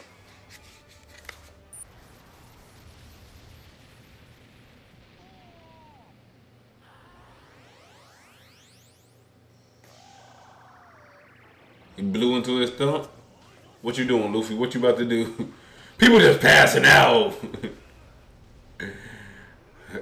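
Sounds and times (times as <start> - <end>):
sound effects: 6.8 - 18.9
rising pitch glides: 6.9 - 14.1.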